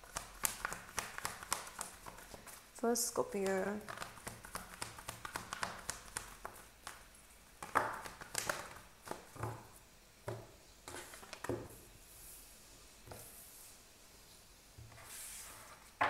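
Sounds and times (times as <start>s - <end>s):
cards being shuffled: 0.0s - 2.6s, 3.4s - 9.3s.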